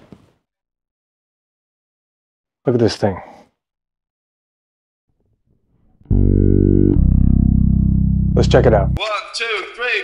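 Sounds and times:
fretless electric bass notes: 6.0s - 9.0s.

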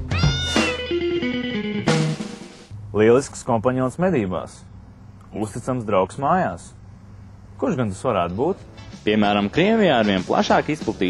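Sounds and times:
cartoon cat meow: 0.0s - 0.7s
plucked notes stepping downward: 0.0s - 2.2s.

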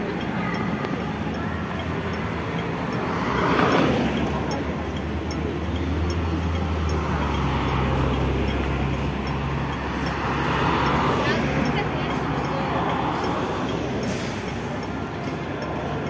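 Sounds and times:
vehicle passing: 0.0s - 16.0s.

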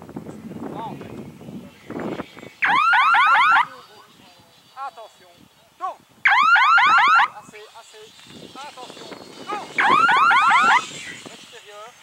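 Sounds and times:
electronic warbling signal horn: 9.8s - 10.8s.

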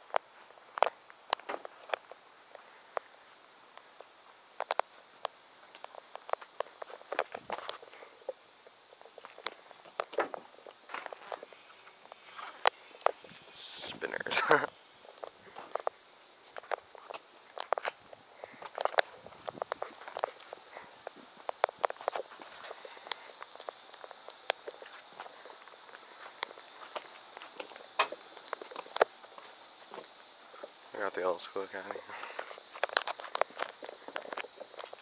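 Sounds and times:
footsteps on pavement: 15.0s - 30.8s, 32.0s - 35.0s.

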